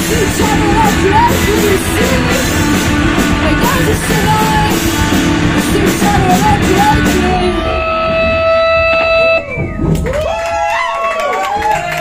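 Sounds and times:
rock band playing: 0.0s - 10.2s
audience cheering and whooping: 7.7s - 12.0s.

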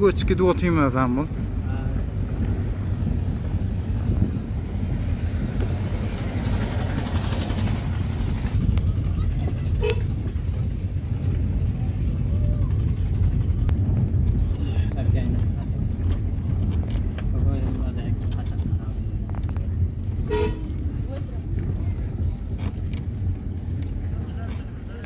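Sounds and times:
car engine and tyres rumbling: 0.0s - 25.0s.

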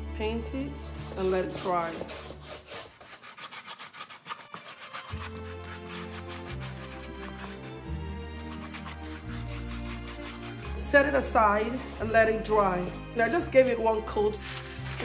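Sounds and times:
background music: 0.0s - 15.0s
paintbrush scrubbing on styrofoam: 0.9s - 7.8s, 8.4s - 13.5s.

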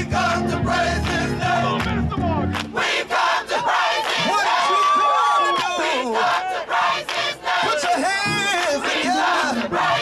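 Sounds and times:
gospel choir singing and shouting: 0.0s - 10.0s
hand-clapping: 1.0s - 2.8s, 4.0s - 4.4s, 7.0s - 8.0s.

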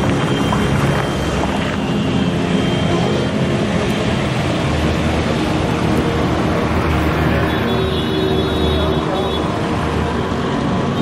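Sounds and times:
car engines passing: 0.0s - 11.0s.

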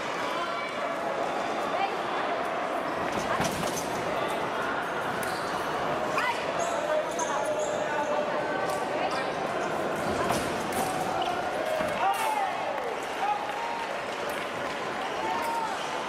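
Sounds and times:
murmur of voices in a hall: 0.0s - 16.0s.

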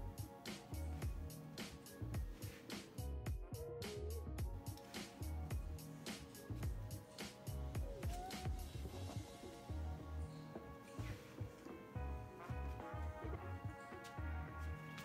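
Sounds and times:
music with drum beat and bass: 0.0s - 10.1s.

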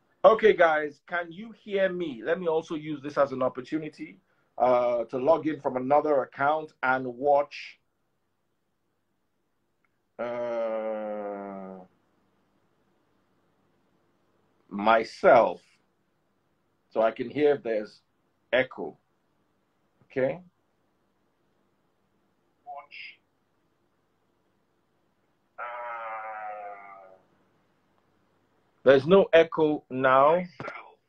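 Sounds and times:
person saying uh: 10.2s - 11.9s, 25.6s - 27.2s
man's drawn-out hesitation sound: 25.6s - 27.3s.

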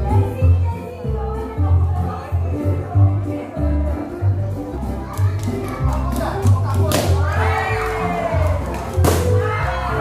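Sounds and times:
children shouting and cheering: 7.2s - 10.0s.

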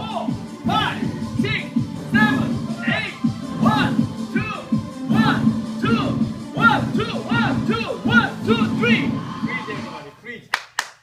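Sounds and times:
sharp hand claps: 10.5s - 11.0s.

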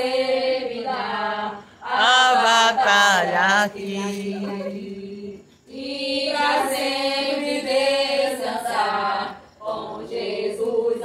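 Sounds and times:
women singing a hymn: 0.0s - 11.0s.

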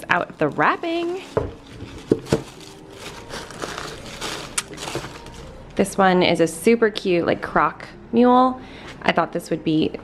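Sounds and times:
tissue paper rustling: 0.0s - 5.6s.

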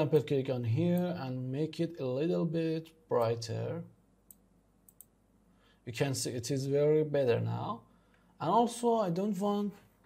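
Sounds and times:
computer mouse clicks: 4.3s - 5.2s.

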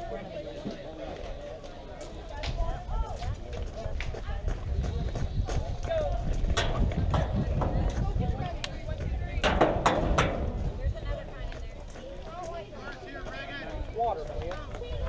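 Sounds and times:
people talking: 0.0s - 15.0s
wind rumble on microphone: 2.4s - 12.0s, 14.6s - 15.0s.

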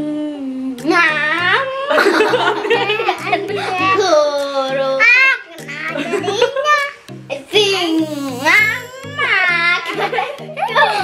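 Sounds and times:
background music with bass line: 0.2s - 11.0s
child crying out: 8.0s - 10.0s.

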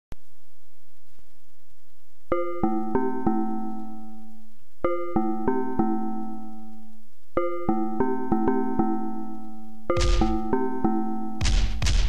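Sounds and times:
hip-hop beat: 10.0s - 10.6s.

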